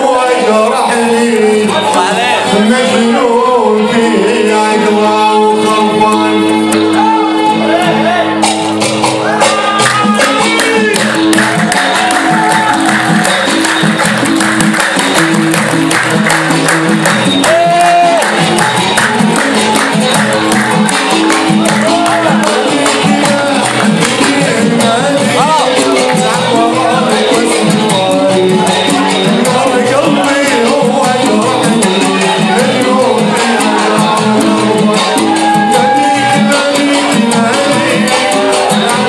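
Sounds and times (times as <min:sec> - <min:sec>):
singing over melodic instruments: 0:00.0 - 0:15.1, 0:16.6 - 0:39.0
fast dense percussion beat: 0:08.4 - 0:39.0.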